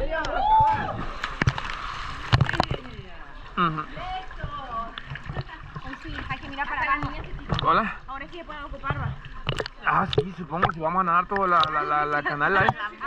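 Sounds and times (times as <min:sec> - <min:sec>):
water sloshing and splashing: 0:00.0 - 0:13.0.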